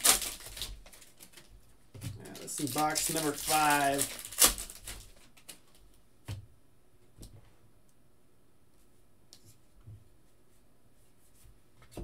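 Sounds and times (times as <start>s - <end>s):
foil wrapper crinkling: 0.0s - 1.5s, 2.2s - 5.9s
sharp crackle of foil: 0.0s - 1.5s, 2.2s - 5.8s.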